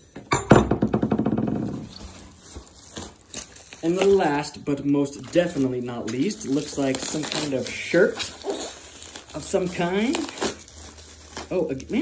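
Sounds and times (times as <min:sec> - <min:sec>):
packaging rustling: 0:01.6 - 0:12.0.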